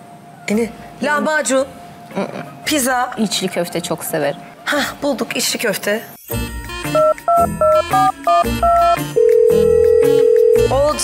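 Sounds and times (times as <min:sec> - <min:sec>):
phone keypad tones: 0:07.0 - 0:10.9
phone ringing tone: 0:07.0 - 0:11.0.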